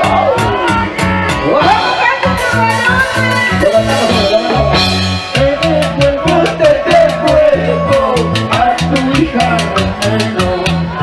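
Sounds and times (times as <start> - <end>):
repeating bass line: 0.0 - 11.0.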